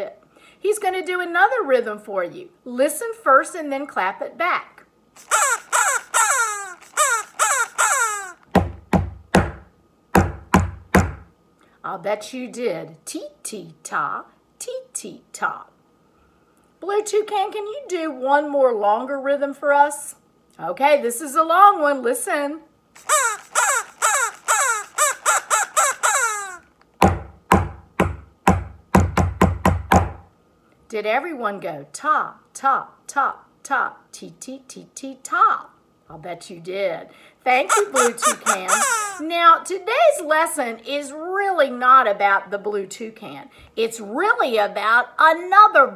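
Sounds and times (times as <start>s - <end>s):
falling bird-like calls: 5.2s - 8.5s, 23.0s - 26.6s, 37.7s - 39.3s
sharp rhythmic knocks: 10.2s - 11.2s, 23.0s - 30.2s.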